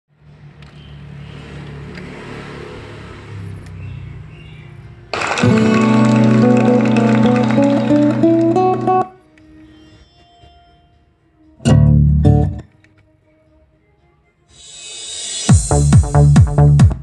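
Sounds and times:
instrumental music from loudspeakers: 0:05.2 - 0:09.3, 0:14.4 - 0:17.0.

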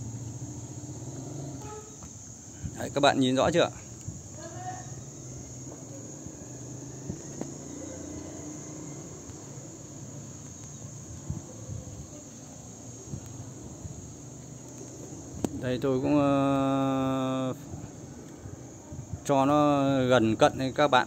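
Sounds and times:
crickets trilling: 0:00.0 - 0:21.0
faint ticks: 0:10.3 - 0:10.9.

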